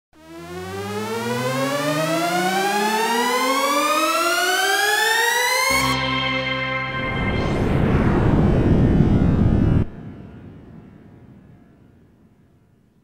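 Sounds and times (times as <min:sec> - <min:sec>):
synthesizer riser tone: 0:00.2 - 0:11.6.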